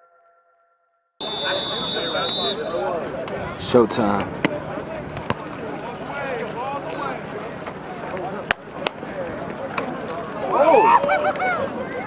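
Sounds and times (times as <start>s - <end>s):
people's voices: 1.2s - 12.0s.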